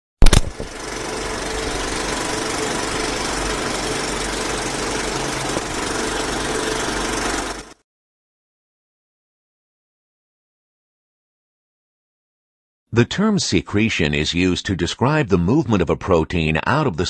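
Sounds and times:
film projector rattle: 0:00.2 - 0:07.8
low hum: 0:00.2 - 0:07.8.

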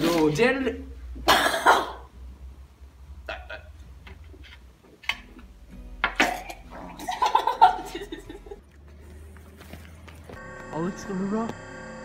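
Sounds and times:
young man coughing: 0:01.2 - 0:02.1, 0:06.2 - 0:06.7.

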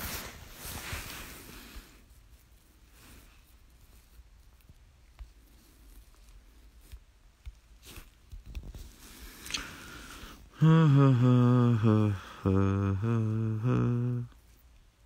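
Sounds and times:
man humming: 0:10.5 - 0:14.4.

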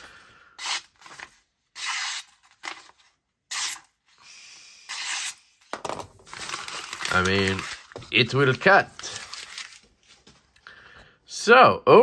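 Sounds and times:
knife slicing paper: 0:00.6 - 0:03.9.

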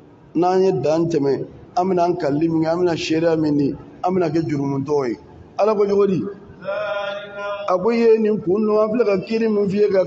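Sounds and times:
person chanting: 0:06.6 - 0:08.0.

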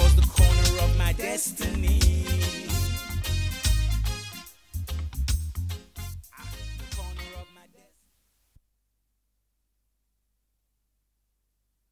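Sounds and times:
reggae music: 0:00.0 - 0:07.9.

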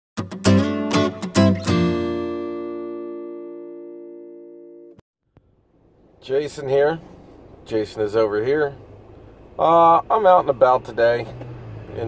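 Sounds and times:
acoustic guitar chord ringing: 0:00.2 - 0:05.0.

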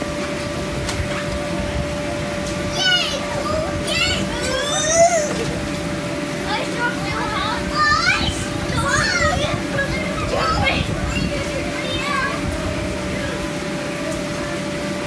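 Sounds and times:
steady low hum: 0:00.0 - 0:15.0
children squealing and shouting: 0:02.7 - 0:05.5, 0:07.4 - 0:12.4.

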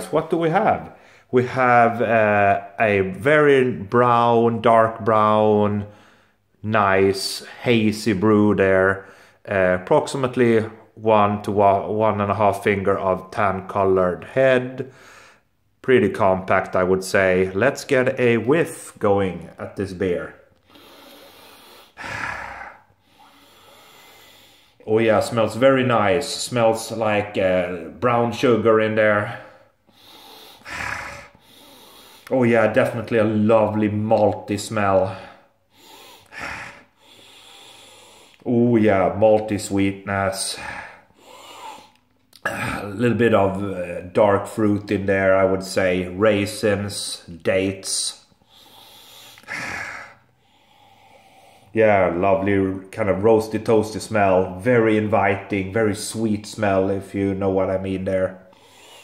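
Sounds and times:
breath through the nose: 0:20.6 - 0:24.8, 0:29.5 - 0:32.3, 0:35.4 - 0:38.4, 0:48.4 - 0:51.7
man sniffing: 0:20.6 - 0:24.8, 0:29.4 - 0:32.4, 0:35.0 - 0:38.5, 0:40.5 - 0:43.0, 0:48.2 - 0:51.8, 0:58.4 - 0:59.0.

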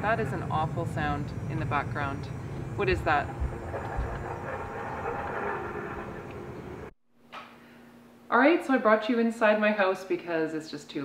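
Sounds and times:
woman talking: 0:00.0 - 0:03.4, 0:08.3 - 0:11.0
droning machine noise: 0:00.0 - 0:06.9
low hum: 0:00.0 - 0:06.9.

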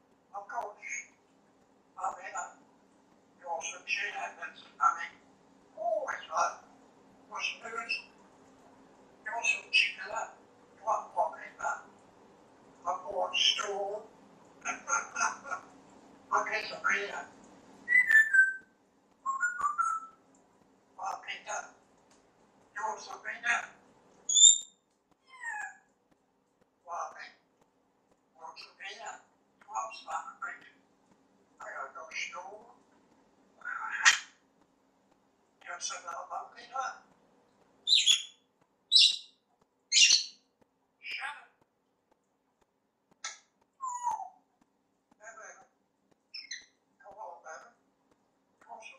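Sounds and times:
parrot squawking: 0:07.3 - 0:08.2, 0:09.3 - 0:11.8, 0:12.9 - 0:13.8, 0:14.6 - 0:15.7, 0:17.9 - 0:18.6, 0:24.3 - 0:25.8, 0:29.8 - 0:30.7, 0:33.6 - 0:34.4, 0:37.9 - 0:39.3, 0:39.9 - 0:40.4, 0:43.2 - 0:44.4, 0:46.3 - 0:47.4
parrot whistling: 0:17.9 - 0:18.6, 0:19.2 - 0:20.1
parrot mumbling: 0:33.6 - 0:34.2.

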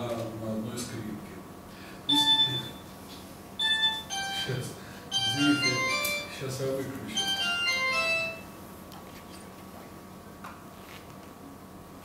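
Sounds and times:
phone electronic ringtone: 0:02.1 - 0:02.8, 0:03.6 - 0:06.4, 0:07.2 - 0:08.6.

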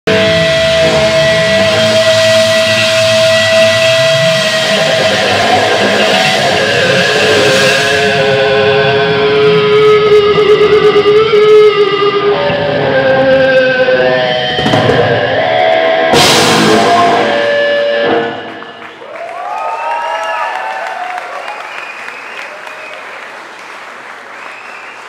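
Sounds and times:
electric guitars sustaining held notes: 0:00.1 - 0:18.9.

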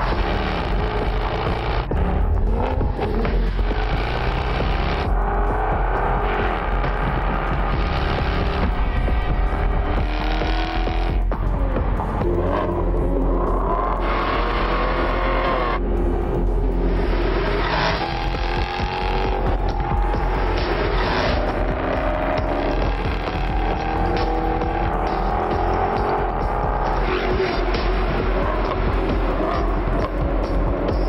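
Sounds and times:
car engine revving hard: 0:00.0 - 0:11.4, 0:12.1 - 0:15.8, 0:16.8 - 0:31.0
advert music: 0:00.0 - 0:31.0.

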